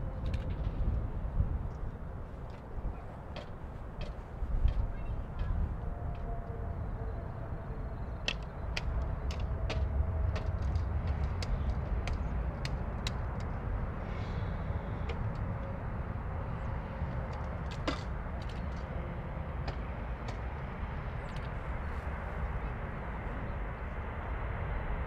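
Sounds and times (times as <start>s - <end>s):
distant jet engine rumble: 0.0s - 25.0s.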